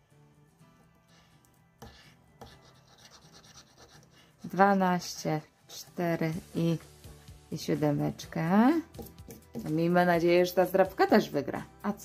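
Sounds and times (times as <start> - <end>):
quiet background music: 0.0 - 12.0
coin scraping scratch card: 1.9 - 4.0.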